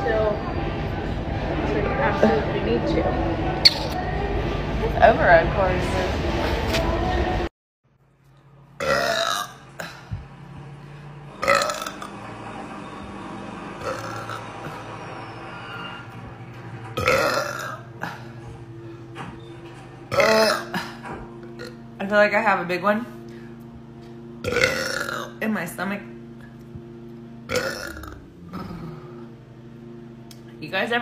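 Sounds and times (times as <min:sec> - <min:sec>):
woman burping: 0:08.8 - 0:10.2, 0:11.4 - 0:12.0, 0:17.0 - 0:18.5, 0:20.1 - 0:21.8, 0:24.4 - 0:25.3, 0:27.5 - 0:29.3.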